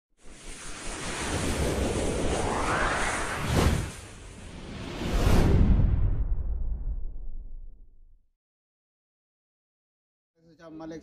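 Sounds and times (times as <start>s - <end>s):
wind-like whoosh: 0.2s - 8.0s.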